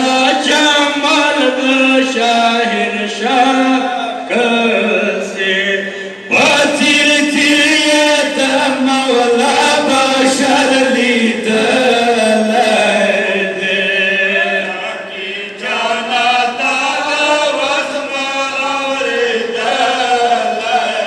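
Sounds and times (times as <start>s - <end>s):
men chanting a mourning lament: 0.0s - 21.0s.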